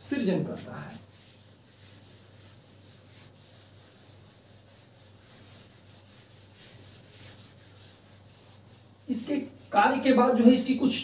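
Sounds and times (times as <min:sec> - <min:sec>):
duster rubbing on whiteboard: 0:00.0 - 0:10.7.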